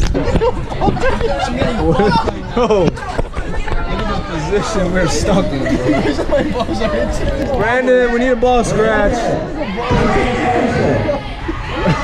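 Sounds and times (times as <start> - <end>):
young men talking and calling out: 0.3 - 12.0.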